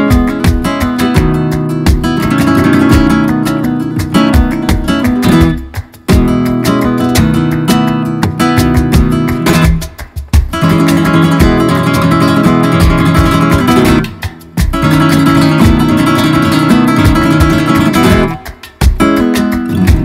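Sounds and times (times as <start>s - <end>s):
flamenco guitar playing: 0.0s - 20.0s.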